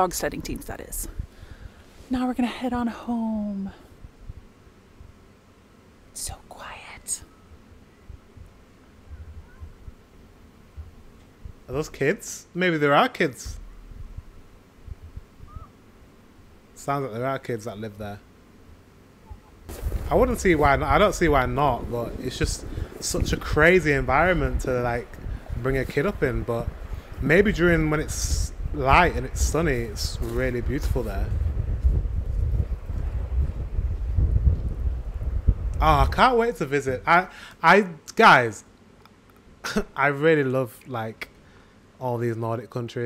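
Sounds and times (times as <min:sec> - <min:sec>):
child's high call: 0:09.1 - 0:09.8, 0:15.5 - 0:15.7
distant children's voices: 0:09.1 - 0:10.0
soft low thumps: 0:13.5 - 0:15.7
wind buffeting microphone: 0:13.5 - 0:15.7, 0:19.7 - 0:37.1.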